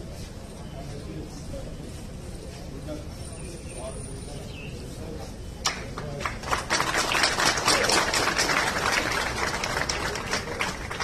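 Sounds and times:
crowd applauding: 0:05.6 - 0:11.0.

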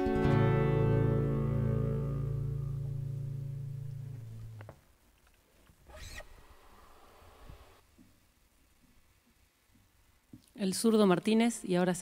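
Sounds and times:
accordion and acoustic guitar chord: 0:00.0 - 0:04.4
high squeak: 0:05.9 - 0:06.4.

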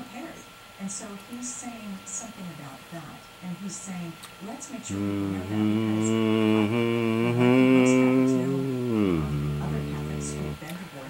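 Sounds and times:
man humming a long note: 0:04.9 - 0:10.6.

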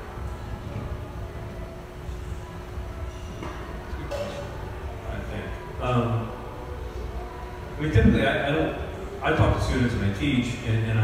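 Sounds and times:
faint steady hum: 0:00.0 - 0:11.0
low room rumble: 0:00.0 - 0:11.0.

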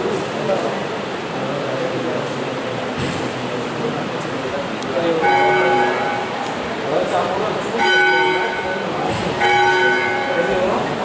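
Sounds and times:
murmur of voices: 0:00.0 - 0:11.0
bell ringing: 0:05.2 - 0:06.4, 0:07.8 - 0:10.8.

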